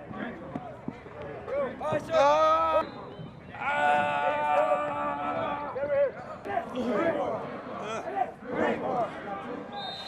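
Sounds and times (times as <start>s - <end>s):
people shouting: 3.5s - 9.5s.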